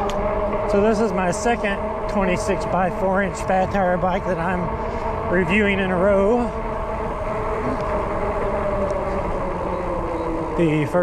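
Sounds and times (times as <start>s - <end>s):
electric bike motor hum: 0.0s - 11.0s
wind on microphone: 0.0s - 11.0s.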